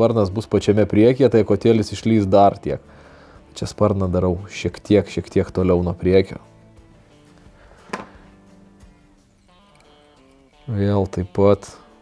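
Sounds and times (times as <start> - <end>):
quiet guitar-like background music: 0.0 - 12.0.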